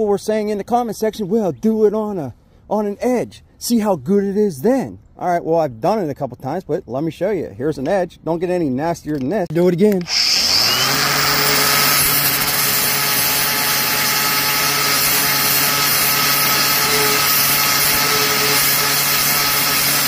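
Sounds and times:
angle grinder grinding metal: 0:09.9 - 0:20.0.

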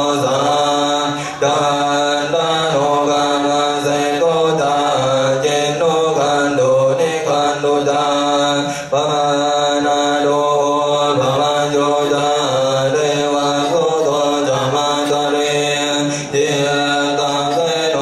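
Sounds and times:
voices chanting: 0:00.0 - 0:18.0.

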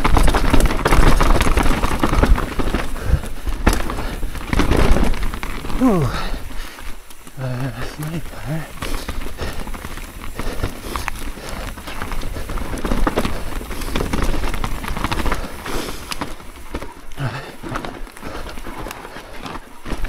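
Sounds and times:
bike knocks and rattles: 0:00.0 - 0:20.0
bike tyres rolling over stone: 0:00.0 - 0:20.0
rider grunting: 0:02.6 - 0:20.0.

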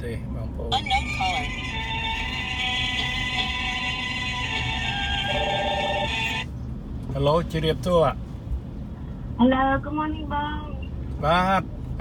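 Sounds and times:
car road rumble: 0:00.0 - 0:12.0
music with held note: 0:01.4 - 0:06.4.

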